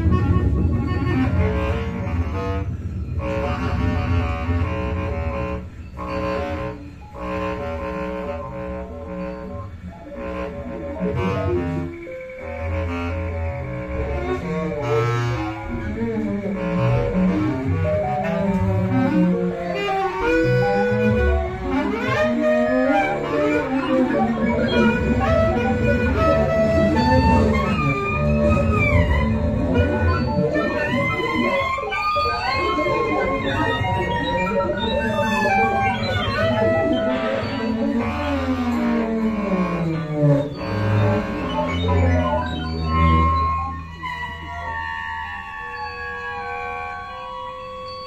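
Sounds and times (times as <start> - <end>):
double bass: 0.0 - 45.4
saxophones: 0.0 - 48.0.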